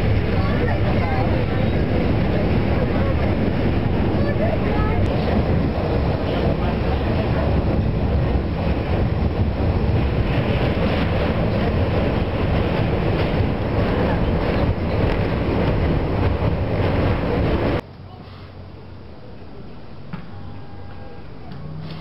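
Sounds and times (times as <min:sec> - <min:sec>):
train wheels rumbling on track: 0:00.0 - 0:22.0.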